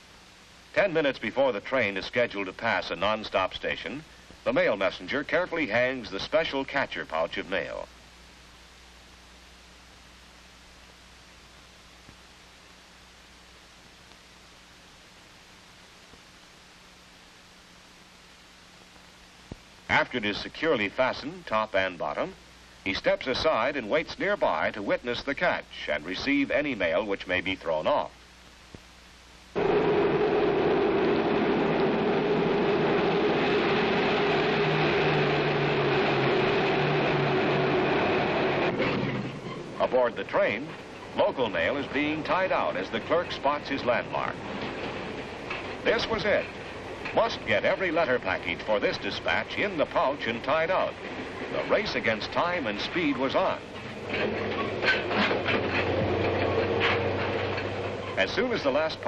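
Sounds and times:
train passing at speed: 0:29.6 - 0:38.9
train rumbling: 0:29.6 - 0:59.0.

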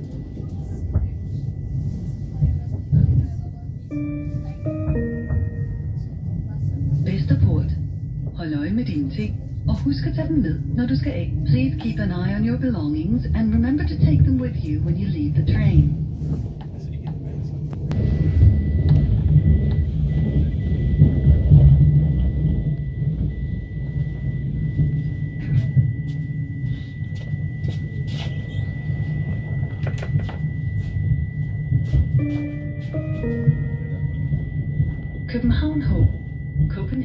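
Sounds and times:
train wheels rumbling: 0:00.0 - 0:37.0
multi-note chime: 0:03.9 - 0:06.3, 0:31.8 - 0:37.0
thin steady high tone: 0:22.8 - 0:37.0.

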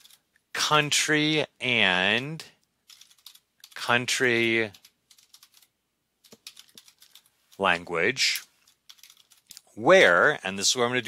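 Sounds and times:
computer keyboard keystrokes: 0:02.9 - 0:03.8, 0:04.7 - 0:07.3, 0:08.9 - 0:09.6.

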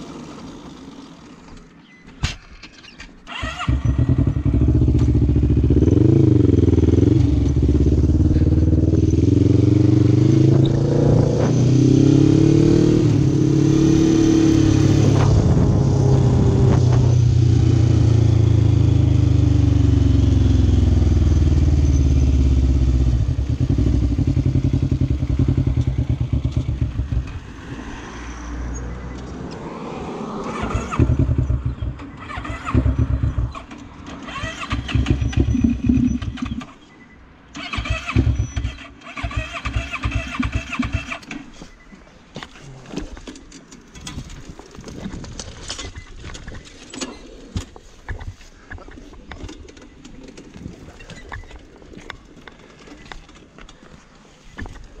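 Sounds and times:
engine cranking and sputtering: 0:02.7 - 0:11.8, 0:30.4 - 0:36.8, 0:37.5 - 0:41.5
quad bike engine running: 0:03.5 - 0:27.4, 0:30.7 - 0:36.7.

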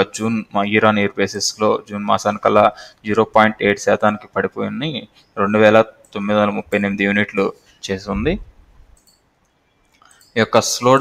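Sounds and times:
man's voice: 0:00.0 - 0:08.5.

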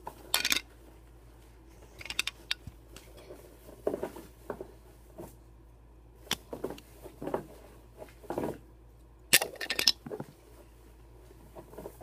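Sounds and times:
spinning-top parts clicking: 0:02.0 - 0:02.6, 0:09.3 - 0:10.0.

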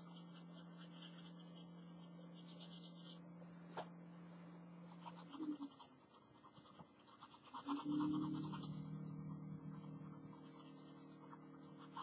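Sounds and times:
pen scratching on paper: 0:00.0 - 0:03.2, 0:04.9 - 0:12.0
steady low hum: 0:00.0 - 0:12.0.

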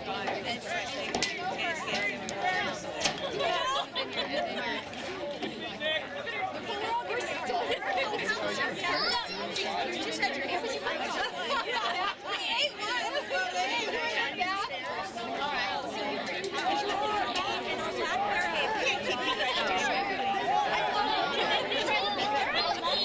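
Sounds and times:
spectators chattering: 0:00.0 - 0:23.0.

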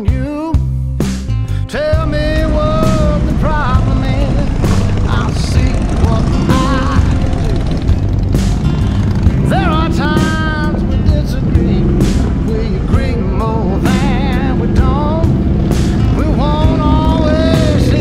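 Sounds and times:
music: 0:00.0 - 0:18.0
motorcycles idling and pulling out: 0:01.7 - 0:18.0
voices: 0:02.0 - 0:08.3.

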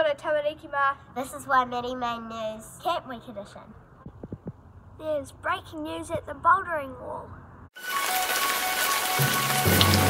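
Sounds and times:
deep bass notes: 0:09.6 - 0:10.0.

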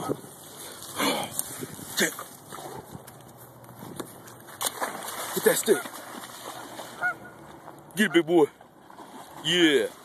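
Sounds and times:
dog wading through water: 0:00.0 - 0:10.0.

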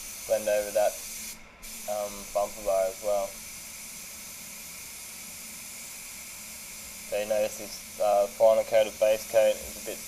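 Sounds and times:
hiss of rushing air: 0:00.0 - 0:10.0.

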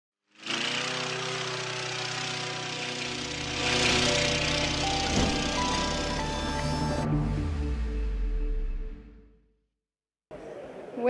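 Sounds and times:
mower engine running: 0:00.3 - 0:08.0
music: 0:03.2 - 0:09.6.

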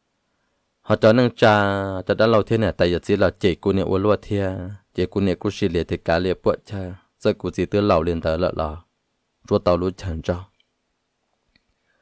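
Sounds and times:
narrator speaking: 0:00.8 - 0:10.6.

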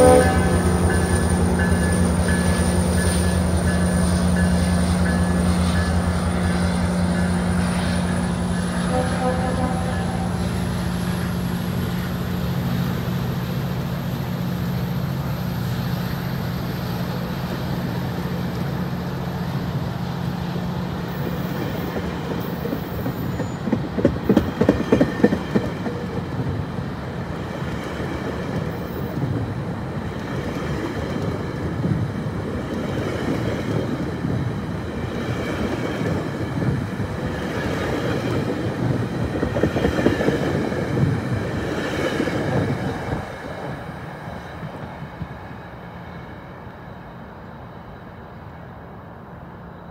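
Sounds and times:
train wheels clattering over rail joints: 0:21.2 - 0:26.6.

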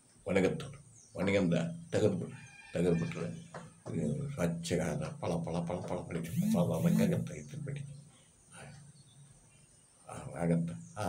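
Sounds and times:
man speaking: 0:00.3 - 0:02.3, 0:03.9 - 0:07.9, 0:10.1 - 0:10.8
faint high tones: 0:06.3 - 0:07.4.

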